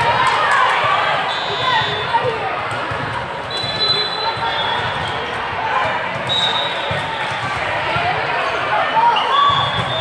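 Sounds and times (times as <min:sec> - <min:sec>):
many voices talking: 0:00.0 - 0:10.0
volleyballs bouncing and hit: 0:00.0 - 0:10.0.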